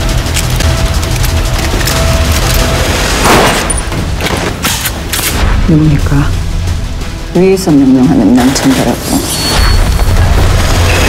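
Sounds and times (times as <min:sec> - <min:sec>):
low driving music: 0:00.0 - 0:11.0.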